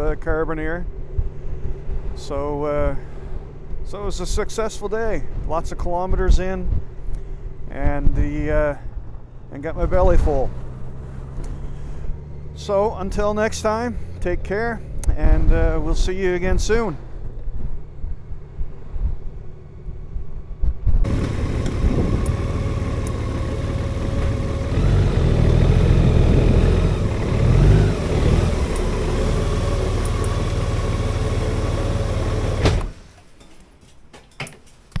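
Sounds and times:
low wind rumble: 0.0 - 33.0
motorcycle engine running: 17.1 - 32.9.

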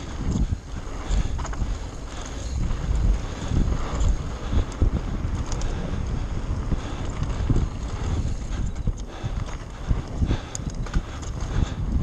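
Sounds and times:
bike tyre rumble on dirt: 0.0 - 12.0.

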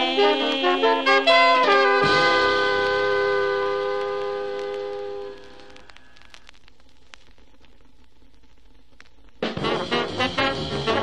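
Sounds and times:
jazz ensemble chord: 0.8 - 5.3, 9.5 - 11.0.

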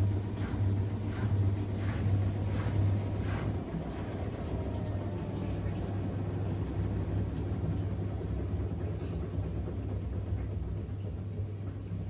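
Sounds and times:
washing machine drum rumbling: 0.0 - 12.0
water swishing in washing machine: 0.0 - 12.0.

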